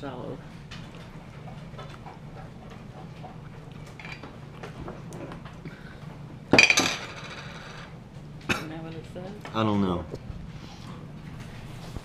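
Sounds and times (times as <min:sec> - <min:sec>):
low room hum: 0:00.0 - 0:12.0
glass jar clinking: 0:06.5 - 0:07.3.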